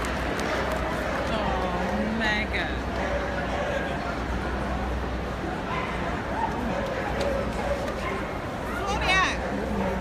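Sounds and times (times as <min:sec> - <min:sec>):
murmur of crowd chatter: 0:00.0 - 0:10.0.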